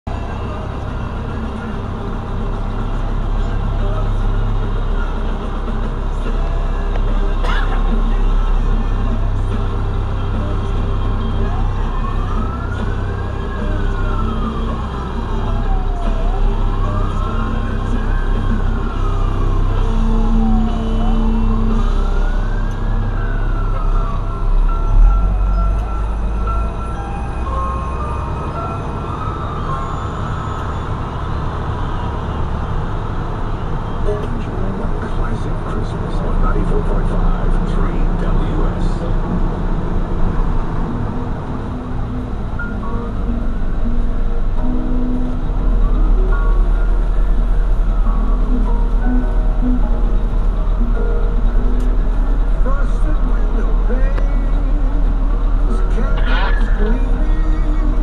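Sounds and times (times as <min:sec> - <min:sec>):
fire truck engine rumble: 0:00.0 - 0:58.0
fire truck siren wailing: 0:00.1 - 0:58.0.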